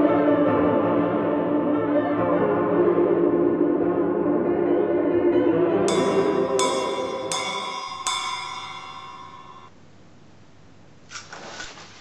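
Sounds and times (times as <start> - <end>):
struck ringing notes: 5.9 - 9.8
brief rustle: 11.1 - 12.0.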